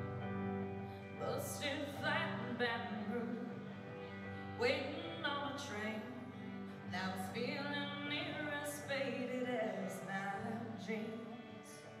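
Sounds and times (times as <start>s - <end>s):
electric guitar notes: 0.0s - 10.5s.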